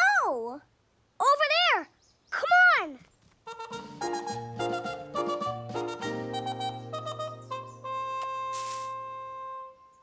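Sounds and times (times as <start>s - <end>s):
instrumental cartoon music: 3.4s - 10.0s.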